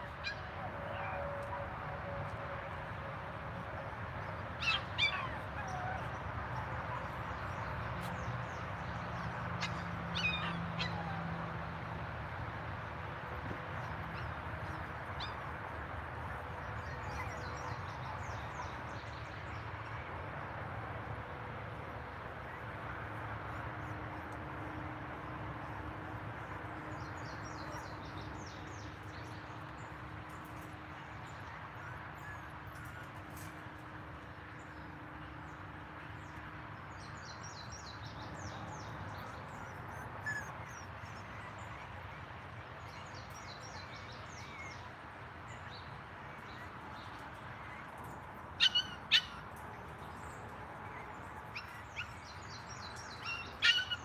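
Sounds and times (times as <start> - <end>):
outdoor background noise: 0.0 - 54.0.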